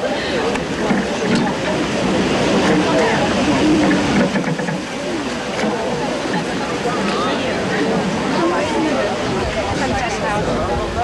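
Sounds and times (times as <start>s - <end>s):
group of people talking: 0.0s - 11.0s
steady background noise: 0.0s - 11.0s.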